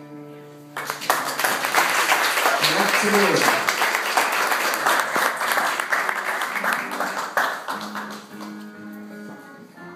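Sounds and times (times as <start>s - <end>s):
audience applauding: 0.8s - 8.8s.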